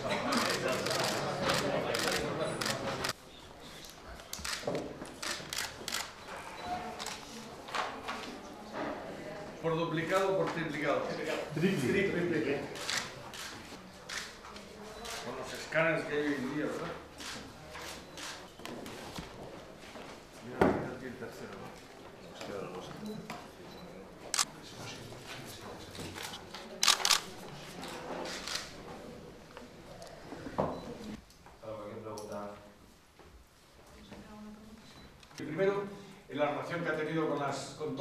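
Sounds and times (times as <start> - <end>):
camera shutters clicking: 0.4 - 3.2, 4.2 - 6.2, 24.3 - 24.5, 26.2 - 27.3.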